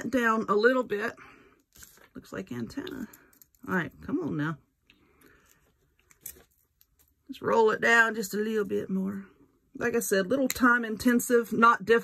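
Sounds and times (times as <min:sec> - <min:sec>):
faint rustling of wire: 0:01.3 - 0:07.4.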